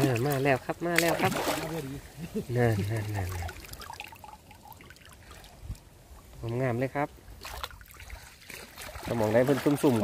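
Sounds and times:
water trickling and dripping: 0:02.6 - 0:10.0.

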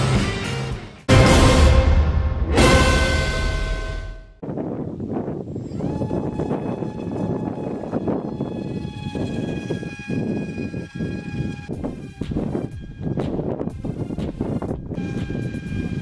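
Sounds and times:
wind buffeting microphone: 0:04.4 - 0:16.0
electric motor and propeller whine: 0:05.5 - 0:16.0.

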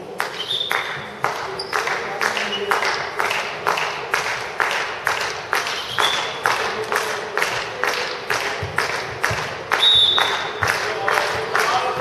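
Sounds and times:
spectators clapping in rhythm: 0:00.0 - 0:12.0.

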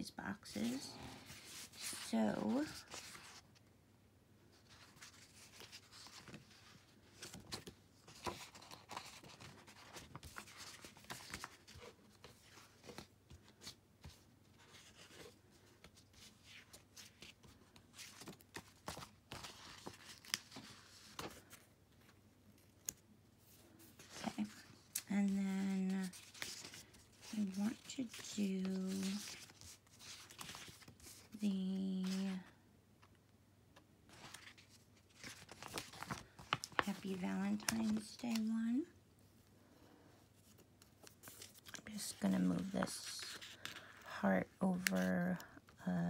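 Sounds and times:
paper sticker sheets rustling: 0:04.6 - 0:32.5, 0:34.1 - 0:38.9, 0:40.5 - 0:45.4.

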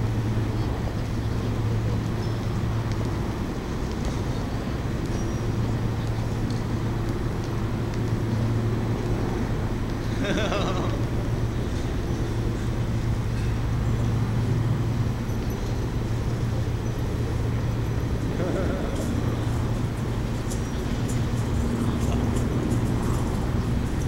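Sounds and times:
faint voices of passers-by: 0:00.0 - 0:24.0
low city hum: 0:00.0 - 0:24.0.

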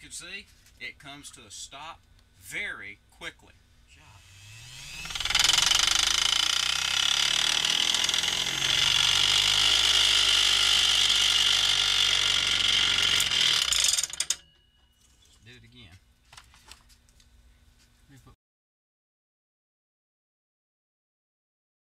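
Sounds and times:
rotary tool whirring: 0:04.2 - 0:14.5.

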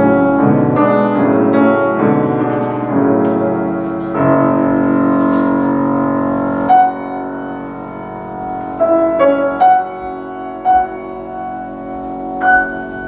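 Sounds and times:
grand piano chords and notes: 0:00.0 - 0:13.0.

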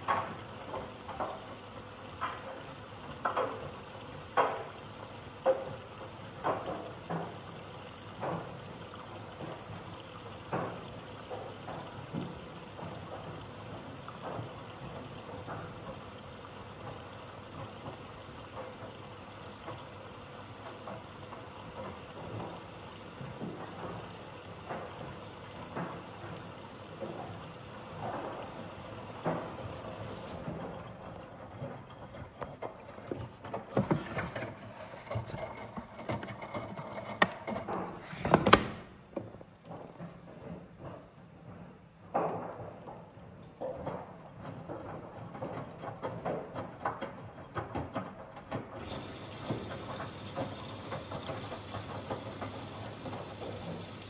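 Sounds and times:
water running into drum: 0:00.0 - 0:37.8, 0:44.7 - 0:54.0
washing machine drum thumps: 0:02.1 - 0:30.2, 0:48.8 - 0:54.0.

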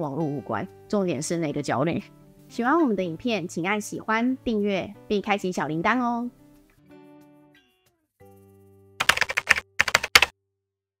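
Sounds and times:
keyboard key clicks: 0:09.0 - 0:10.3.

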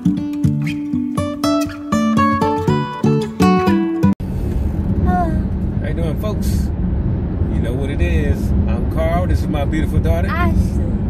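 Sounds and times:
car interior rumble: 0:04.2 - 0:11.0.

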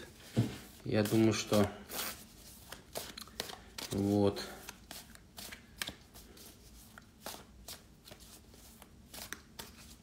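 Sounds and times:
cards shuffled by hand: 0:00.7 - 0:10.0.

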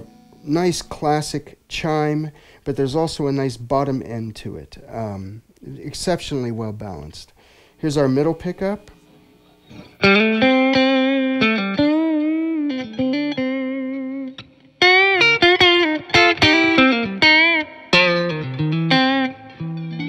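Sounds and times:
electric guitar single notes: 0:00.0 - 0:01.5, 0:08.8 - 0:20.0.

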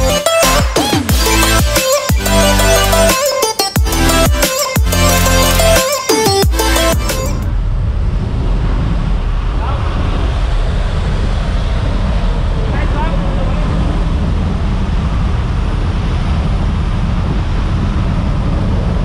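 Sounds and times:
aircraft engine noise: 0:00.0 - 0:19.0
wind rushing: 0:06.5 - 0:19.0.

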